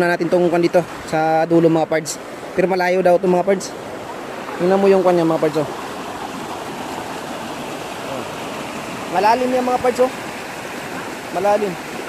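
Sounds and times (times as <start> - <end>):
stream water rushing over rocks: 0.0 - 12.0.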